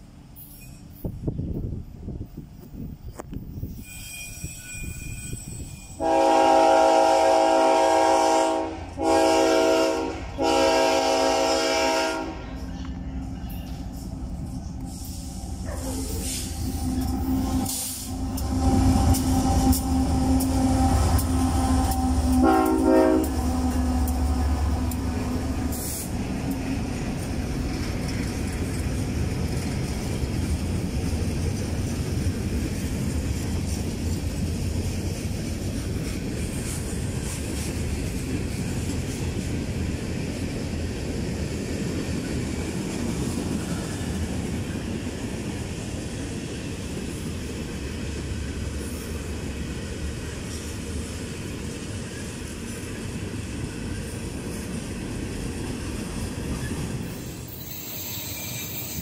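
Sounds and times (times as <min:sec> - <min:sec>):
locomotive horn blasts: 0:06.0 - 0:12.7, 0:15.9 - 0:26.0, 0:57.7 - 0:59.0
diesel locomotive engines running: 0:06.0 - 0:59.0.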